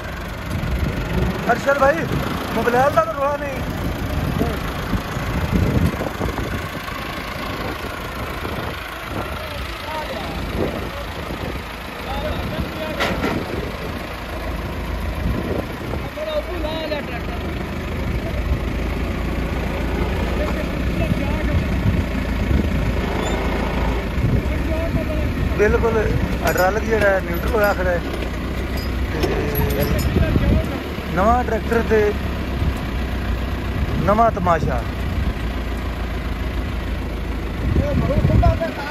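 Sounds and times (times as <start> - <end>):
tractor diesel engine running: 0.0 - 38.9.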